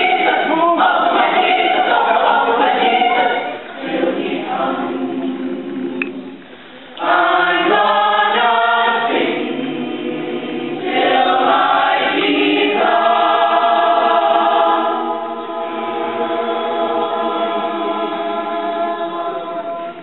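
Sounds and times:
choir singing in harmony: 0.0 - 6.4, 7.0 - 20.0.

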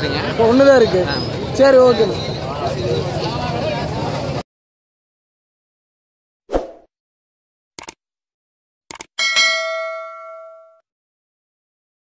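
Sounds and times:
notification bell ding: 9.2 - 10.8.

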